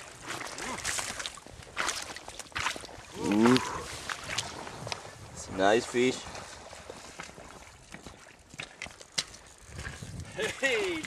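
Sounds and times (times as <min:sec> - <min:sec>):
fish splashing in shallow water: 0:00.0 - 0:11.0.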